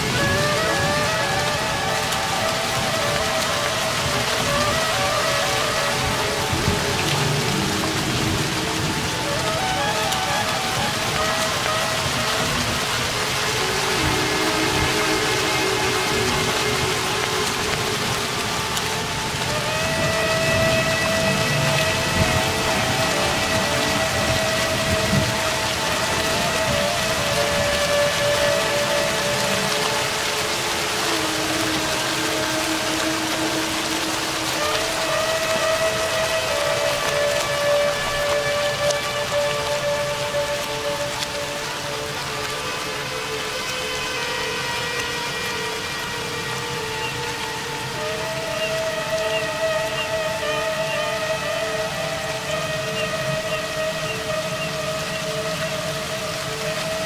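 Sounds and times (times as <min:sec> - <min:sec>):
heavy rain: 0:00.0 - 0:57.0
held woodwind notes: 0:00.0 - 0:57.0.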